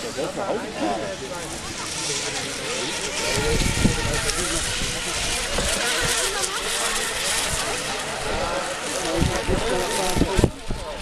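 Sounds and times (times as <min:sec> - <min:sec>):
model boat motors hissing: 0:00.0 - 0:11.0.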